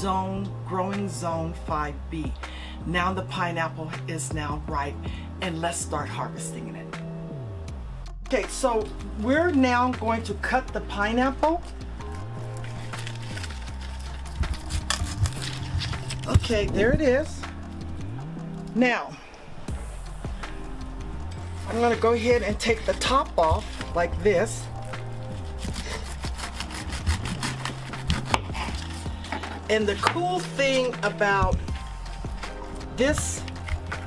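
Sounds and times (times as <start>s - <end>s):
background music: 0.0s - 34.0s
knife cracking through pineapple stalk: 12.5s - 16.4s, 24.8s - 30.2s.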